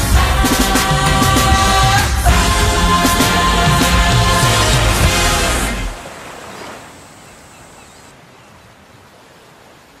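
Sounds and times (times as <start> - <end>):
waves washing on a shore: 3.2 - 10.0.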